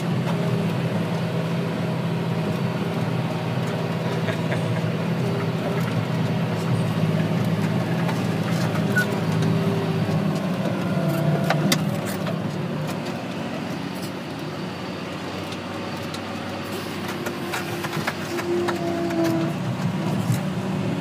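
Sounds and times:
diesel tractor engine under load: 0:00.0 - 0:21.0
light rattles and clicks in cab: 0:03.6 - 0:14.5, 0:15.4 - 0:20.6.

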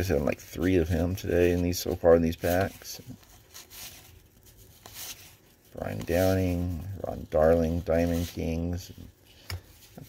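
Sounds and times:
cardboard cards rustling: 0:00.0 - 0:10.0.

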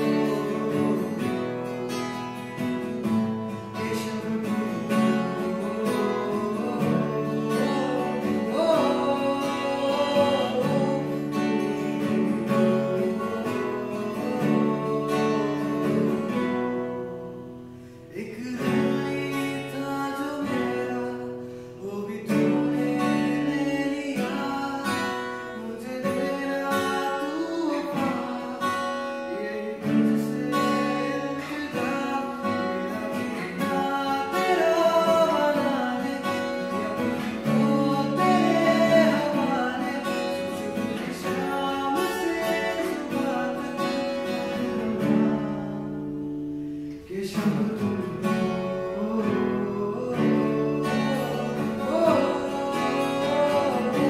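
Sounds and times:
man singing: 0:00.0 - 0:54.0
strummed acoustic guitar: 0:00.0 - 0:54.0.

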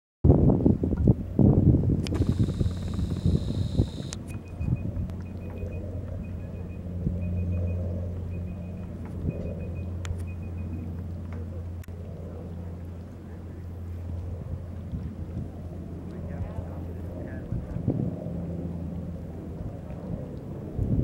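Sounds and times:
wind buffeting microphone: 0:00.3 - 0:06.3, 0:14.2 - 0:18.6, 0:19.4 - 0:21.0
low engine hum: 0:01.0 - 0:21.0
high whine: 0:02.0 - 0:10.9
faint high chirp: 0:02.2 - 0:10.8.

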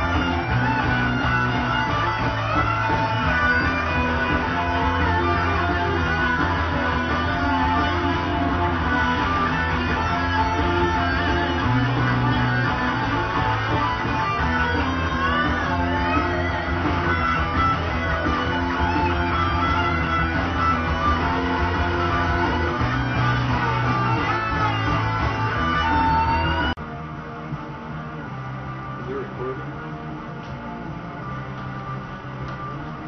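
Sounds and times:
electric guitar lead notes: 0:00.0 - 0:33.0
low bass notes: 0:00.0 - 0:33.0.

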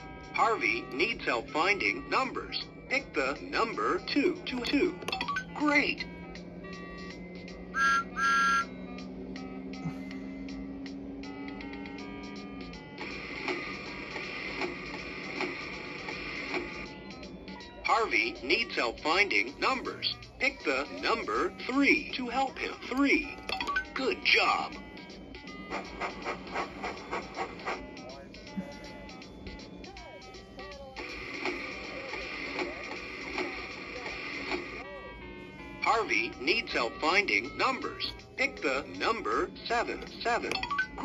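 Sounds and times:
toy laptop beeping tune: 0:04.6 - 0:05.8, 0:07.7 - 0:08.8
toy speaker machine whirring: 0:07.7 - 0:08.7.

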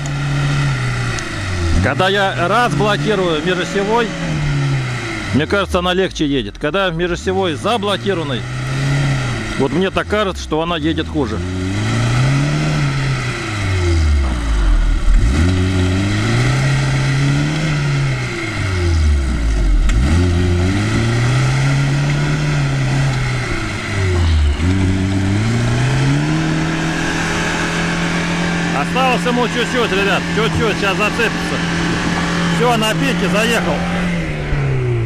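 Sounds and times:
car engine revving hard: 0:00.0 - 0:35.0.

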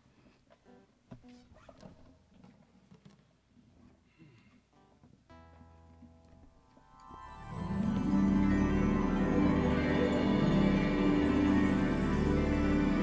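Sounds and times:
held instrument note: 0:06.9 - 0:13.0.

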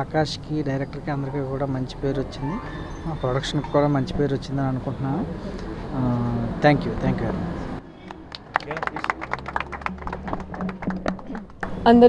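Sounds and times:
low murmur of voices: 0:00.9 - 0:12.0.

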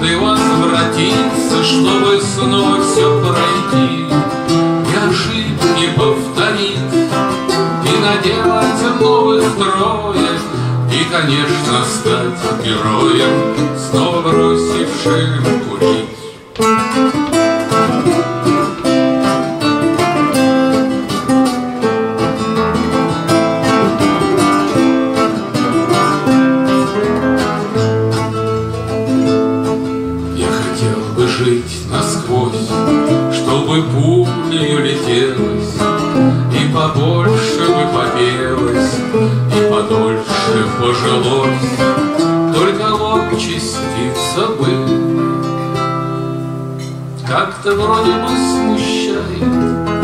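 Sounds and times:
man singing: 0:00.0 - 0:20.9, 0:30.1 - 0:45.6, 0:47.0 - 0:50.0
acoustic guitars playing: 0:00.0 - 0:50.0.

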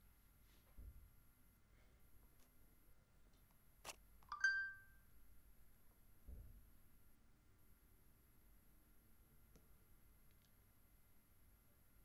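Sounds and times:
two-note electronic chime: 0:04.4 - 0:04.9.

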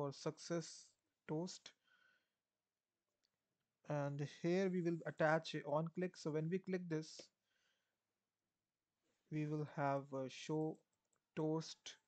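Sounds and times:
man speaking: 0:00.0 - 0:01.7, 0:03.9 - 0:07.2, 0:09.4 - 0:10.8, 0:11.4 - 0:12.0.

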